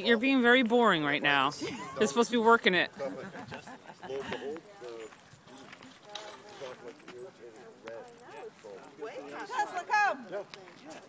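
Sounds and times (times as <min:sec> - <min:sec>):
indistinct conversation: 0:00.0 - 0:11.0.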